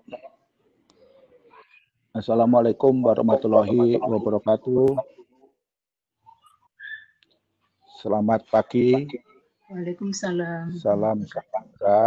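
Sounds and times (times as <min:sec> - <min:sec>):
faint high whistle-like tone: 0:06.8 - 0:07.2.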